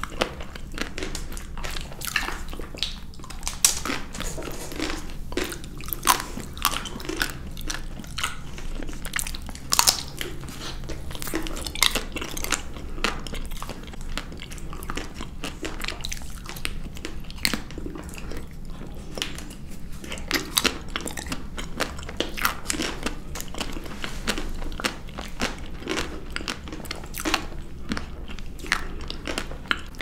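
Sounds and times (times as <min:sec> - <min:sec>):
chewing and wet mouth sounds: 0:00.0 - 0:30.0.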